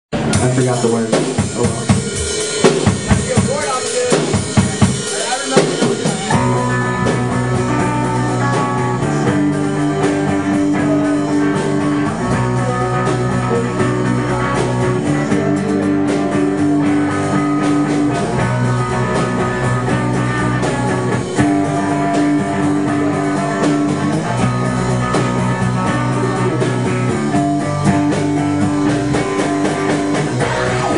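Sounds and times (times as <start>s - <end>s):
drums playing: 0.1s - 30.9s
guitars and bass chords: 0.1s - 30.9s.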